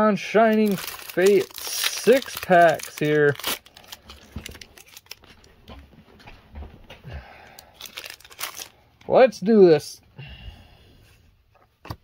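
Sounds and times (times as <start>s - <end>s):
foil wrapper crinkling and tearing: 0.4s - 5.5s, 7.6s - 8.8s.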